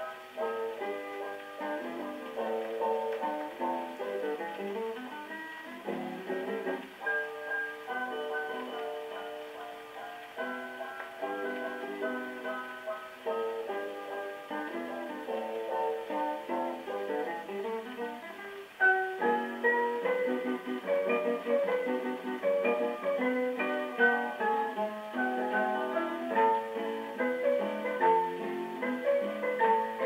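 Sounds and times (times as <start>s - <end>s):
plucked guitar on old record: 0.0s - 30.0s.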